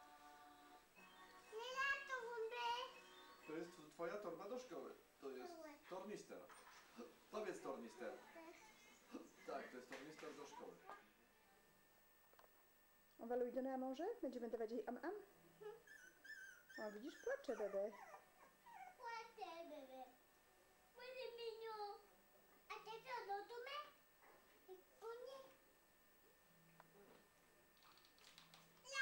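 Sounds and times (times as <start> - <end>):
puppy whimpering: 15.6 - 19.2.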